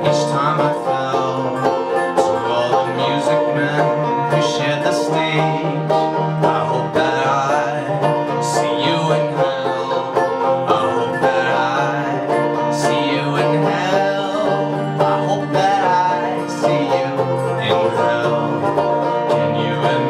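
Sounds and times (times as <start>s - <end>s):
banjo picking: 0.0s - 20.0s
resonator guitar: 0.0s - 20.0s.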